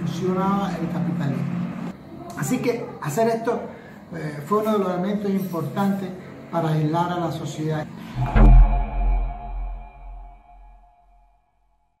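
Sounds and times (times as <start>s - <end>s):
deep boom: 8.0s - 11.1s
sustained ringing tones: 8.0s - 11.1s.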